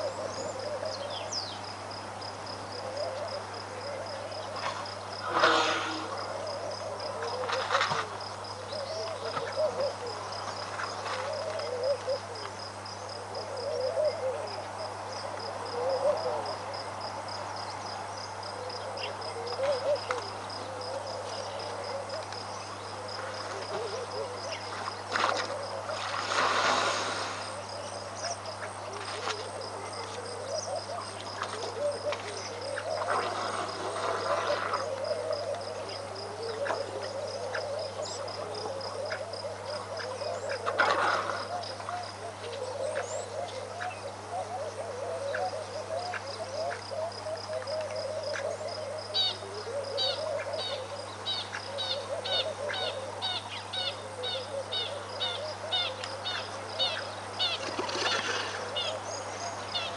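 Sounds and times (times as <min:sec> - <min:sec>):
constant low hum: 0:00.0 - 0:59.9
brief rushes of noise: 0:05.2 - 0:06.3.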